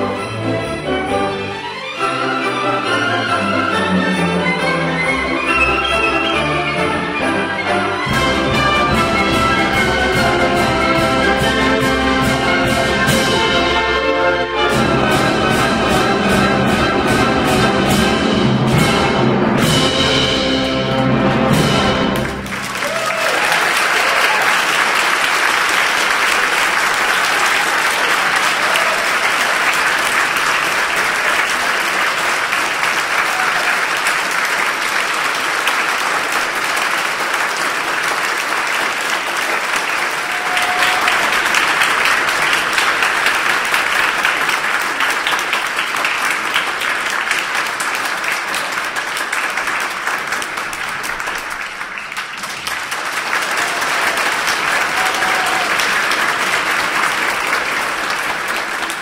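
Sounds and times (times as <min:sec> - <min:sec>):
audience applause: 0:00.2 - 0:14.0, 0:20.9 - 0:59.0.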